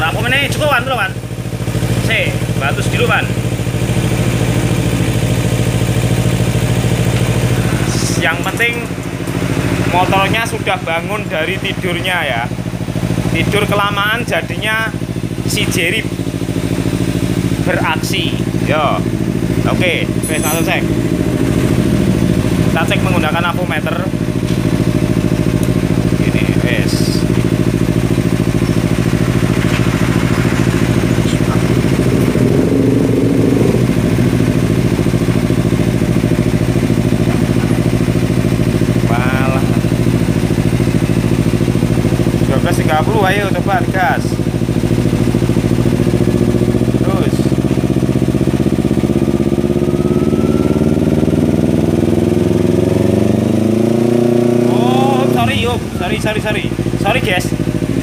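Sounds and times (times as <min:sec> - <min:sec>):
motorcycle engine idling and revving: 0:00.0 - 0:58.0.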